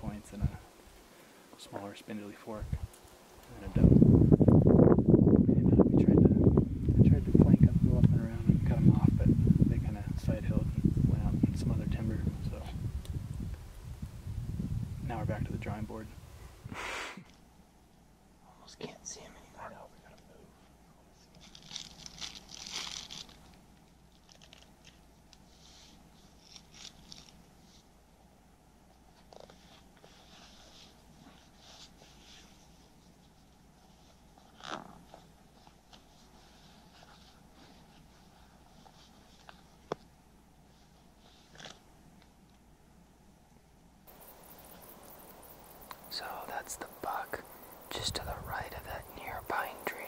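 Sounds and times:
faint steady hush: 0.0s - 4.1s, 6.2s - 21.4s, 44.0s - 50.0s
soft rustle: 18.7s - 28.2s, 28.9s - 42.5s, 44.1s - 50.0s
snack wrapper crinkling: 21.4s - 25.0s.

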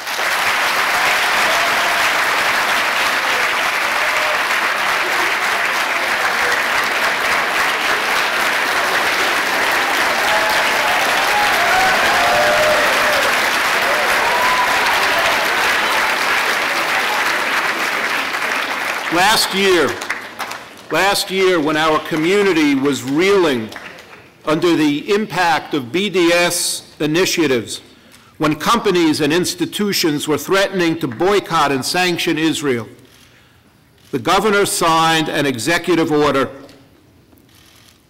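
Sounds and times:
audience applauding: 0.0s - 24.3s.

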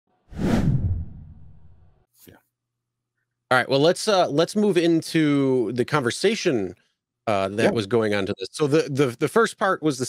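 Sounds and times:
whoosh: 0.3s - 2.0s
low rumble: 0.4s - 2.0s.

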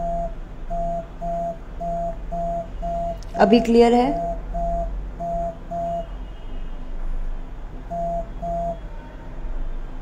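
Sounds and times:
electronic tone beeping: 0.0s - 6.1s, 7.9s - 8.8s
low steady hum: 0.0s - 6.1s, 7.9s - 8.8s.

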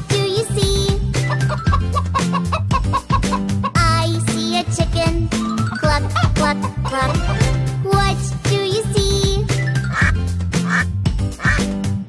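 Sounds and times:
bouncy children's song music: 0.0s - 12.0s
duck quacks: 9.9s - 11.7s.

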